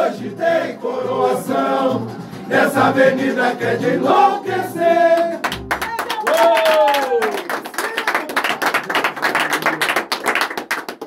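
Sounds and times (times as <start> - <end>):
choir singing held note: 0.0 - 5.4
small group clapping: 5.1 - 11.0.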